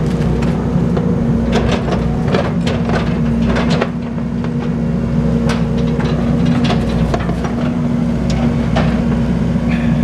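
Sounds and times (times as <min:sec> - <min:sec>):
machine engine running steadily: 0:00.0 - 0:10.0.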